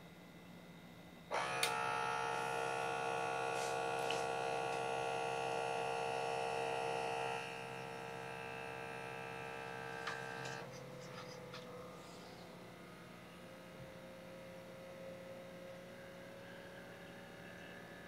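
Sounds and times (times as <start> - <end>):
electric air pump buzzing: 1.3 - 12.4.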